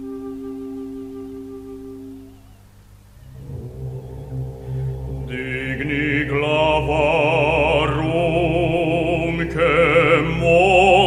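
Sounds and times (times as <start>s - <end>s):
low sustained drone: 0.0s - 11.0s
choral singing with vibrato: 3.3s - 11.0s.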